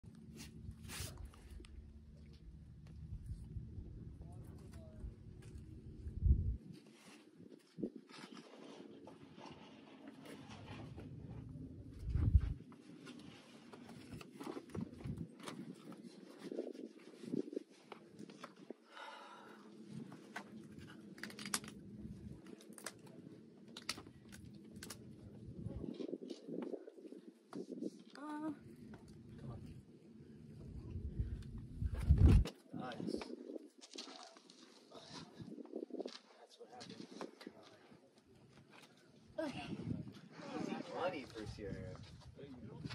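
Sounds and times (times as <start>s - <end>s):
low rumble: 11.0s - 12.6s.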